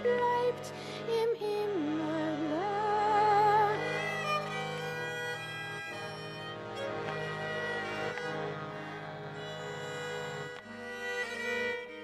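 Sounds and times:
button accordion: 0.0s - 12.0s
fiddle: 0.0s - 12.0s.

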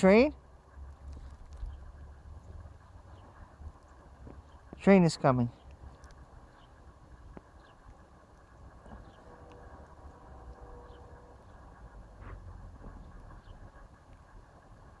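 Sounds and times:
distant train rumble: 0.0s - 15.0s.

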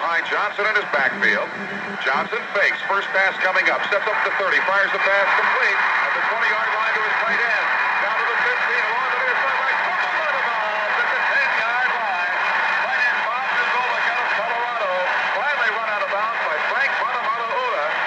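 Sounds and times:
steady background noise: 0.0s - 4.0s
broadcast commentators talking: 0.0s - 18.0s
faint steady high tone: 0.9s - 2.5s.

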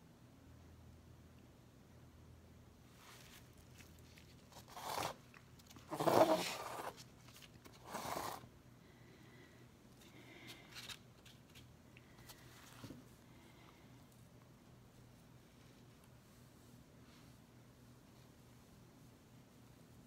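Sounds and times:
canvas scraping on cardboard: 4.5s - 5.2s, 5.8s - 7.1s, 7.8s - 8.4s.

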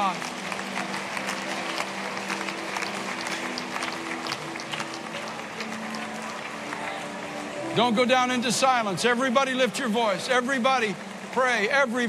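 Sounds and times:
people clapping: 0.0s - 12.0s.

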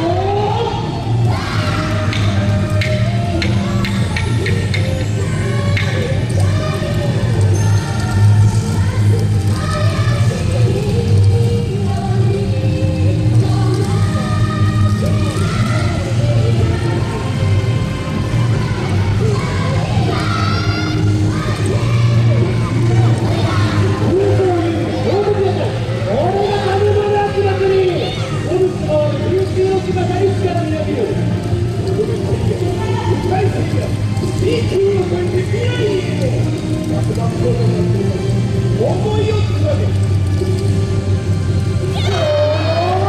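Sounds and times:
dancers shouting calls: 0.0s - 4.2s, 41.8s - 43.0s
dance music over sound system: 0.0s - 43.0s.

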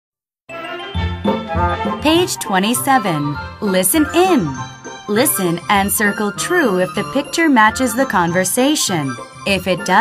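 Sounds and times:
bright musical jingle: 0.5s - 10.0s
pulsing bass line: 0.9s - 8.3s.

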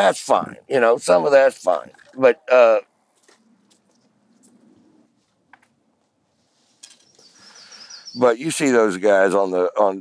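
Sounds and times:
small bird chirping: 6.8s - 8.4s.

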